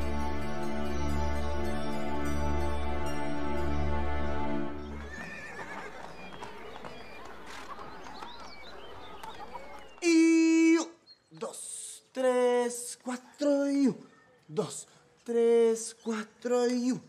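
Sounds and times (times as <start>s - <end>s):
sustained music chord: 0.0s - 5.0s
horse neighing: 5.0s - 6.0s.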